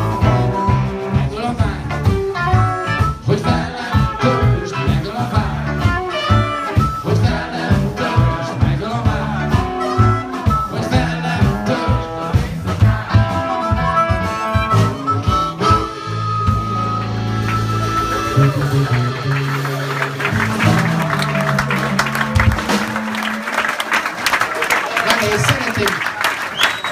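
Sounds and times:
live blues band playing: 0.0 - 26.9
audience applause: 16.7 - 26.9.

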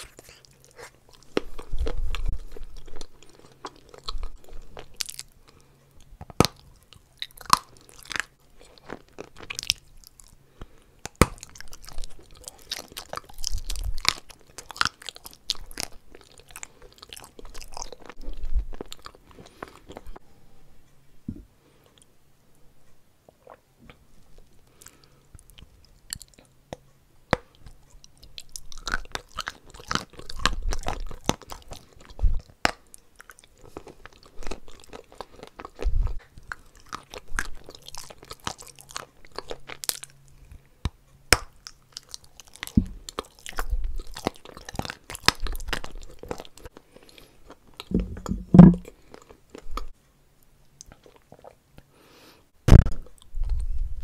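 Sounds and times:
chewing and crunching: 0.0 - 20.2, 23.3 - 50.0, 50.7 - 54.0.

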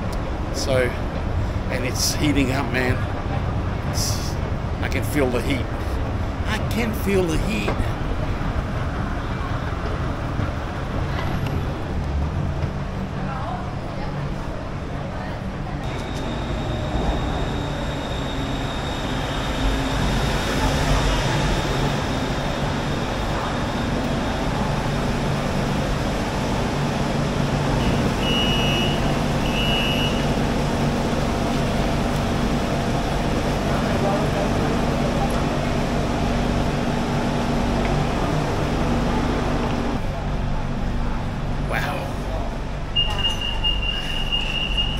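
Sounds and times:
train arriving and humming: 0.0 - 44.9
short electronic beeps: 43.0 - 44.9.

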